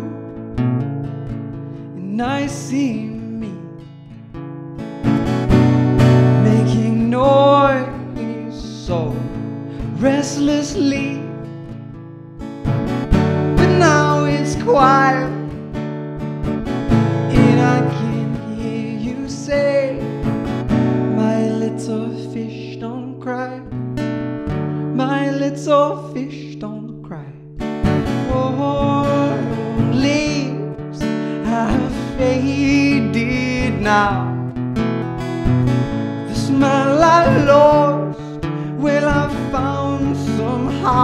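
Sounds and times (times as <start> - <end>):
man singing: 0.0 - 0.4, 1.9 - 3.8, 6.3 - 11.4, 13.6 - 15.6, 17.3 - 20.2, 21.0 - 23.8, 24.9 - 27.6, 28.2 - 34.4, 36.2 - 41.0
strummed acoustic guitar: 0.0 - 41.0.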